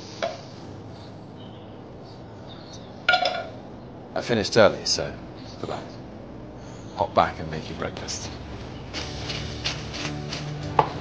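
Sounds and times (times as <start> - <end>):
soft background music: 7.3 - 11.0.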